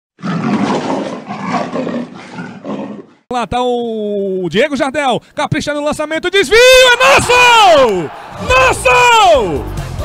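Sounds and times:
lion roaring: 0.2 - 3.3.

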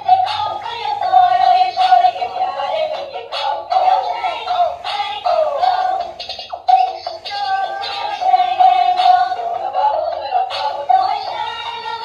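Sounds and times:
music from toy speaker: 0.0 - 12.0
toy synthetic singing voice: 0.0 - 12.0.

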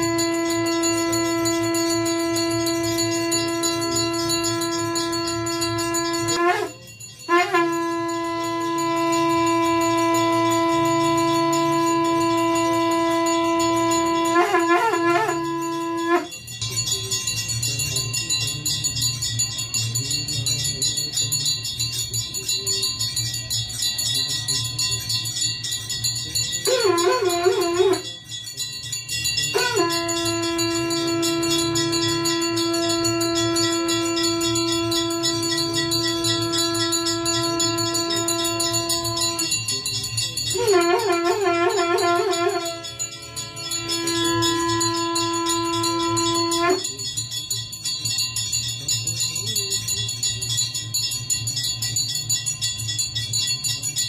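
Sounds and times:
conch shell blowing: 0.0 - 19.7, 20.6 - 48.8
temple bells ringing rapidly: 0.0 - 54.0.

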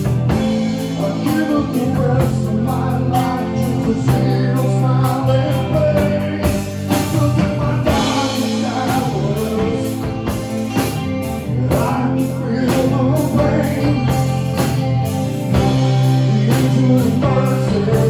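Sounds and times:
bass guitar: 0.0 - 18.0
electric guitar: 0.0 - 18.0
singer vocals: 0.0 - 18.0.

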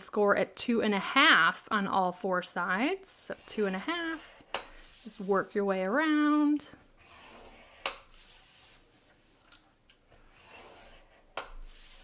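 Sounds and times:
stylus scraping cardstock: 7.0 - 8.9, 10.2 - 12.0.

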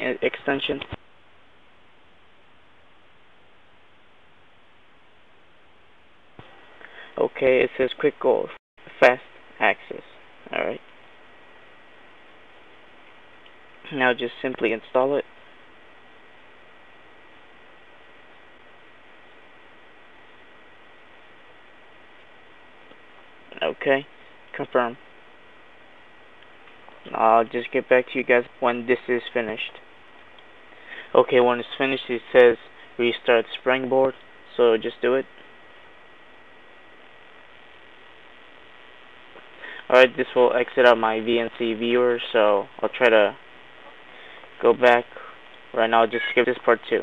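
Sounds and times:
faint background hiss: 0.0 - 47.0
high whine: 0.0 - 47.0.

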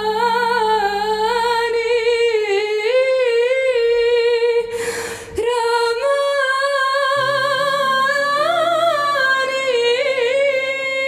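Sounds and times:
singer breathing: 4.7 - 5.4.

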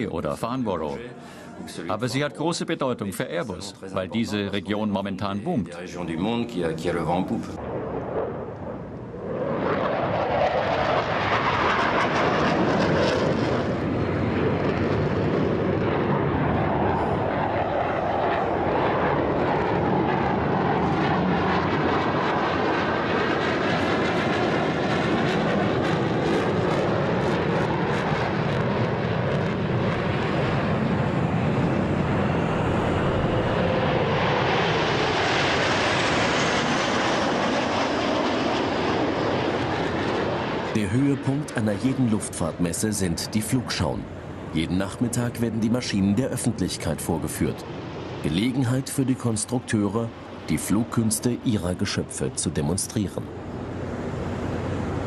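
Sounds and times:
jet aircraft flying by: 0.8 - 55.0.

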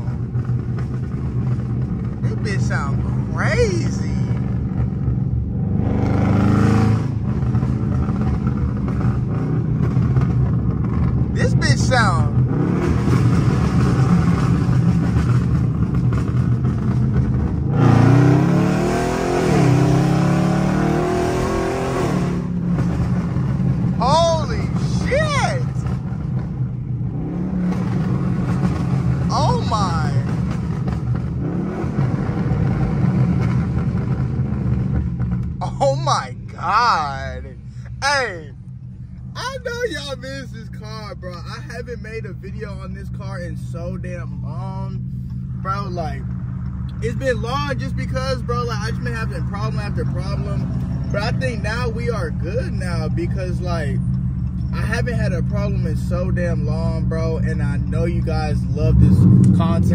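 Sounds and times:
car engine accelerating from cabin: 0.0 - 38.3, 39.3 - 59.9.

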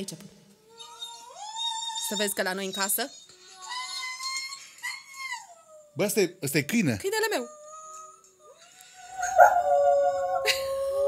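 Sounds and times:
dog howling through phone speaker: 8.5 - 11.0.

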